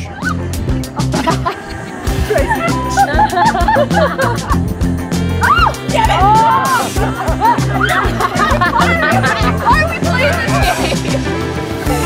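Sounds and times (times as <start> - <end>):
background music: 0.0 - 12.0
women shrieking and squealing: 1.3 - 4.2, 5.4 - 11.0.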